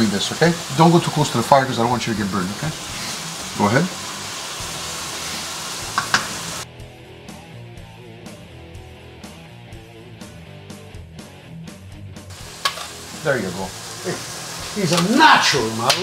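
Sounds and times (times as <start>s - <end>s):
meat sizzling in a pan: 0.0s - 6.7s, 12.3s - 16.0s
background music with steady beat: 5.7s - 13.7s.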